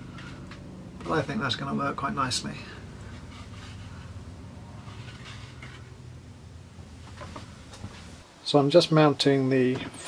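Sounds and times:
rustling and scraping of cardboard: 0.0s - 1.7s, 2.8s - 6.0s, 6.9s - 8.2s
steady low hum: 0.0s - 8.4s.

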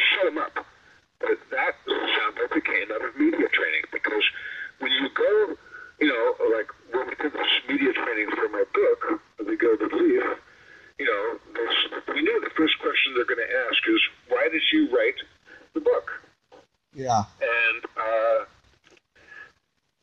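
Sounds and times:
man talking over phone line: 0.0s - 0.6s, 1.2s - 10.4s, 11.0s - 16.2s, 17.0s - 18.6s.

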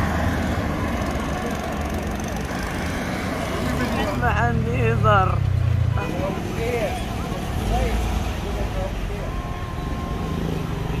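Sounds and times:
car traffic rumble: 0.0s - 11.0s
voices of people: 1.0s - 11.0s.

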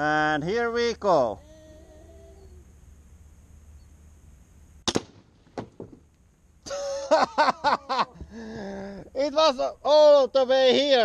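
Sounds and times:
crossbow firing snap: 4.8s - 5.8s.

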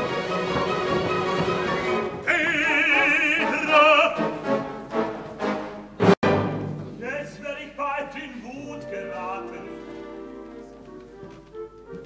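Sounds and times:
opera orchestra playing: 0.0s - 12.0s.

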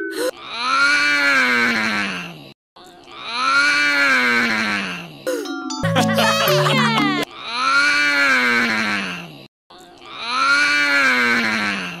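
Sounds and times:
cartoon child yawning: 6.2s - 9.2s.

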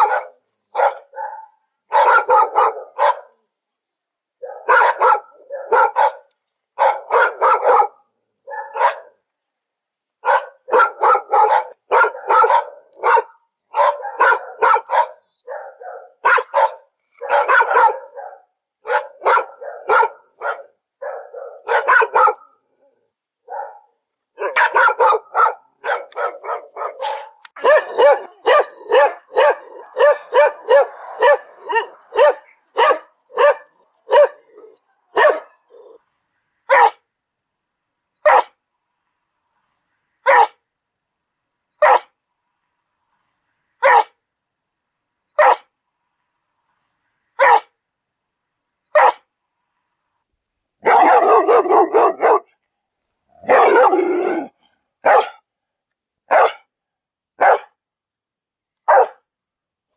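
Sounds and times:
dog barking: 0.0s - 3.4s, 4.4s - 9.2s, 10.2s - 36.0s, 36.7s - 37.0s, 38.2s - 38.6s, 40.2s - 40.6s, 41.8s - 42.2s, 43.8s - 44.2s, 45.4s - 45.7s, 47.4s - 47.8s, 48.9s - 49.3s, 50.8s - 52.6s, 53.4s - 55.4s, 56.3s - 56.7s, 57.4s - 57.8s, 58.8s - 59.3s.

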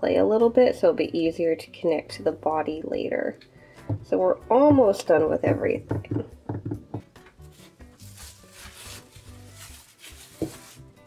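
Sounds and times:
soft background music: 0.0s - 11.0s
plastic bag crinkling: 7.5s - 11.0s.

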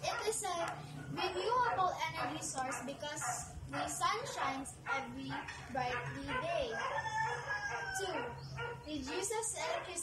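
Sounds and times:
rooster crowing: 6.6s - 8.8s.

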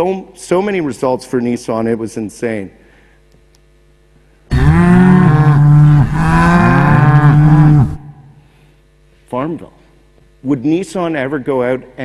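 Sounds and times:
cow mooing: 4.5s - 8.4s.

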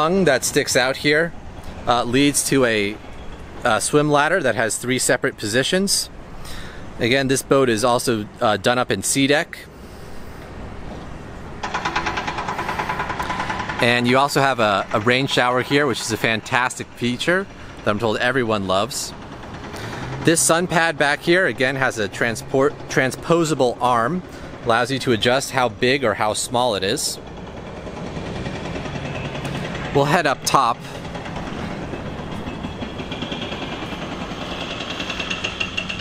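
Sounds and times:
engine running with fast pulse: 10.2s - 36.0s
mechanical background din: 11.1s - 36.0s.

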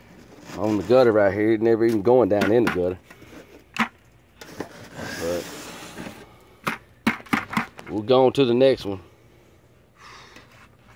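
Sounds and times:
gloved hand scraping gutter debris: 0.0s - 7.8s
debris and tools knocking on gutter: 6.6s - 7.8s.

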